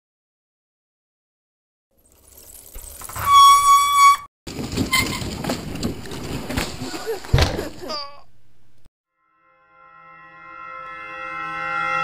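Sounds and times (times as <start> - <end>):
loud horn-like tone: 9.2 - 12.0.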